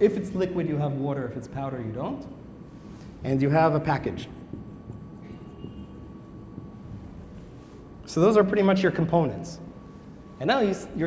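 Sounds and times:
low room rumble: 0.0s - 11.0s
marker writing on paper: 3.9s - 7.6s
marker squeak: 4.2s - 6.8s.

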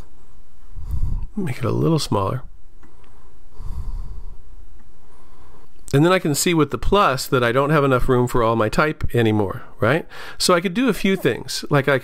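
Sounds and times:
man breathing out: 3.2s - 4.4s.

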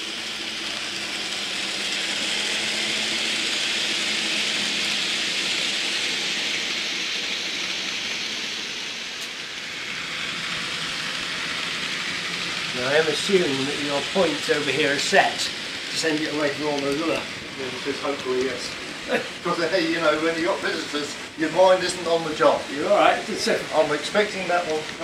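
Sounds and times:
model trains rolling on track: 0.0s - 25.0s.

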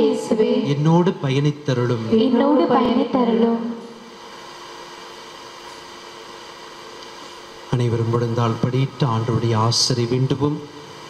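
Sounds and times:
faint amplifier hum: 0.0s - 11.0s
steady hiss: 0.0s - 11.0s.

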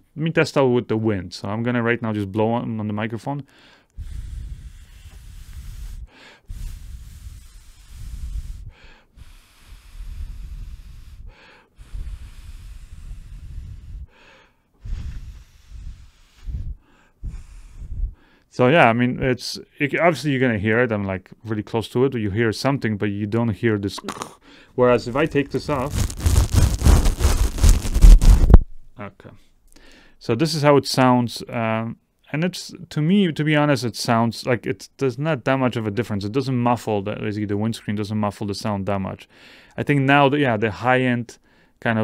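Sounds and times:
quick inhale: 3.5s - 18.5s, 24.4s - 24.8s, 29.8s - 30.2s, 39.3s - 39.8s, 41.4s - 41.8s
breath blowing on microphone: 4.0s - 18.3s, 24.1s - 28.7s
low rumbling thumps: 25.0s - 28.9s
fur windscreen rustling: 25.1s - 28.6s.

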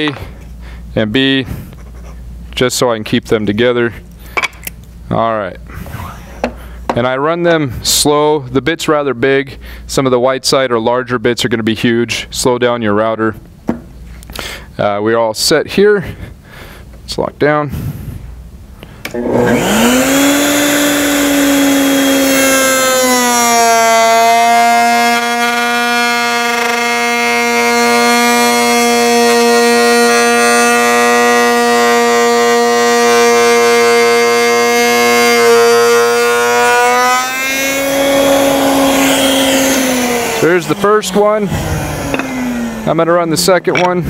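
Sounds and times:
router motor whining: 19.0s - 44.0s.

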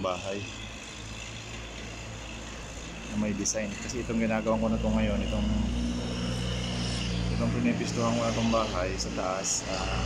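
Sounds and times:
low continuous hum: 0.0s - 10.0s
outdoor background rumble: 0.0s - 10.0s.

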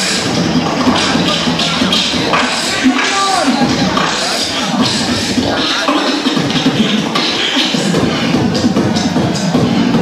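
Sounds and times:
beatboxing through speakers: 0.0s - 10.0s.

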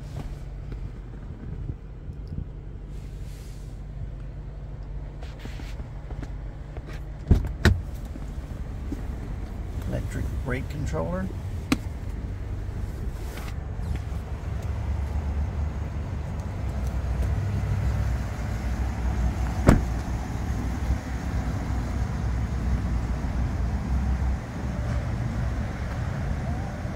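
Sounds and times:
steady low rumble: 0.0s - 26.9s
truck door shutting: 6.8s - 10.2s, 19.3s - 20.6s.

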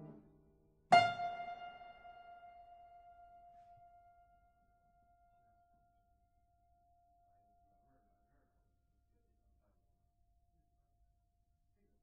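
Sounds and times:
piano note ringing: 0.9s - 3.5s.

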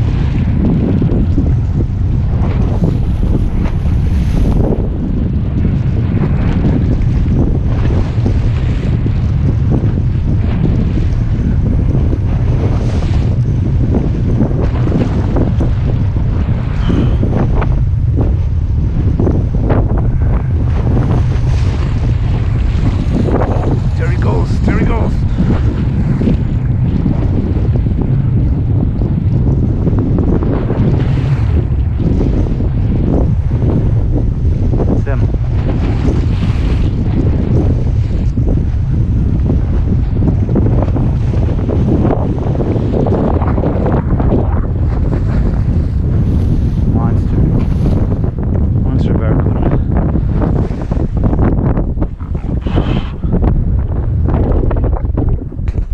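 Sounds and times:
wind buffeting microphone: 0.0s - 55.9s.

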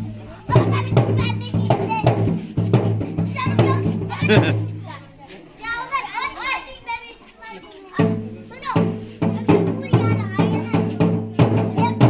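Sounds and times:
music: 0.0s - 5.1s, 8.0s - 12.0s
drum beating steady rhythm: 0.0s - 5.3s, 7.8s - 12.0s.

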